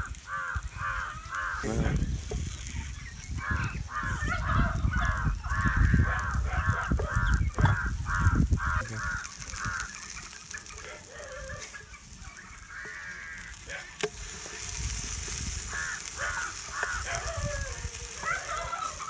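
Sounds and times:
birds calling harshly: 0.0 - 19.0
burger patty sizzling in oil: 0.0 - 19.0.

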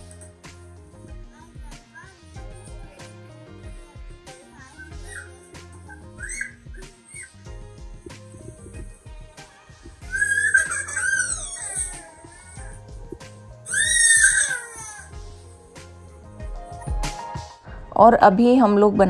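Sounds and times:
background music: 0.0 - 19.0
toddler crying: 3.7 - 7.4, 9.9 - 12.8, 13.6 - 15.2.

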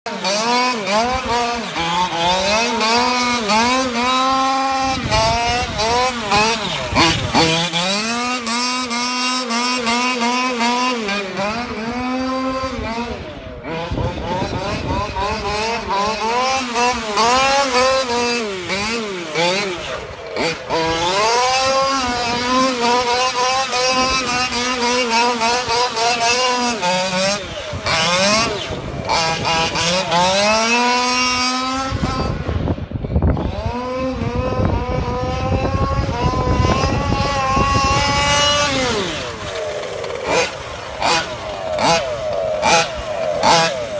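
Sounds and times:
two-stroke engine revving: 0.0 - 43.9.

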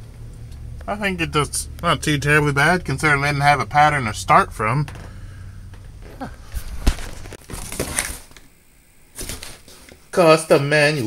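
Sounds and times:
rustling: 4.9 - 10.1.

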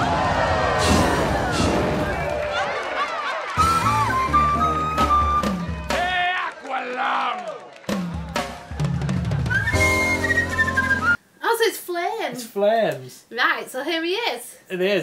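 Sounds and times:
jazz flute solo: 3.6 - 6.0, 9.4 - 11.2
drum kit and bass: 7.9 - 11.2.

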